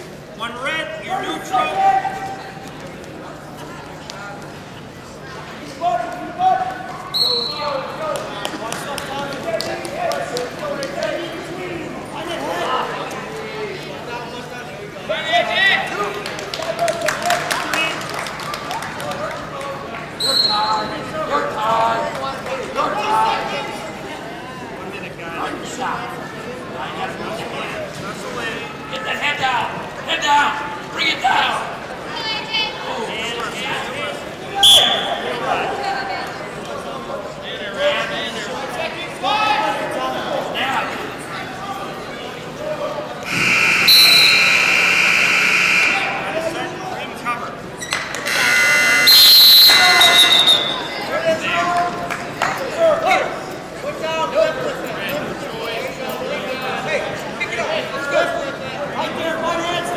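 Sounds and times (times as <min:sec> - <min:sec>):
short high whistle blast: 0:43.3 - 0:46.1, 0:49.0 - 0:50.9.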